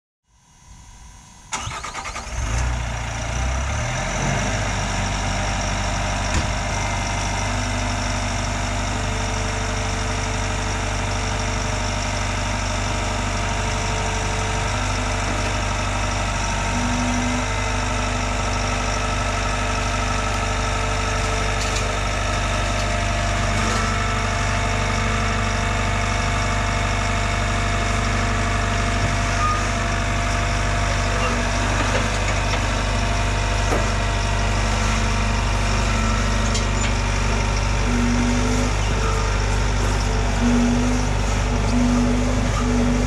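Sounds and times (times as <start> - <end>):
diesel engine idling: 1.3 - 43.0.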